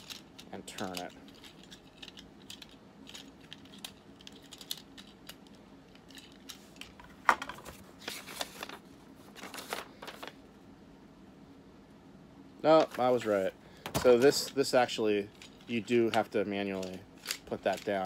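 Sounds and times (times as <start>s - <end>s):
paper rustling: 6.5s - 10.4s.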